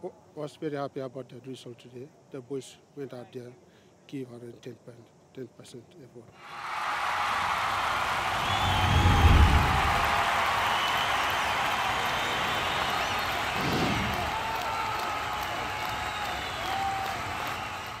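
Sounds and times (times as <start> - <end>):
crowd cheering and applause: 6.4 - 18.0.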